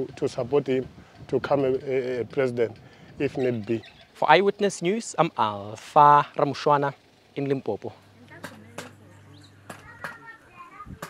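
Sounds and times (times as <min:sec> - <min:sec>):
children chattering: 0:08.0 - 0:11.0
sharp knocks: 0:08.4 - 0:09.0, 0:09.6 - 0:10.2.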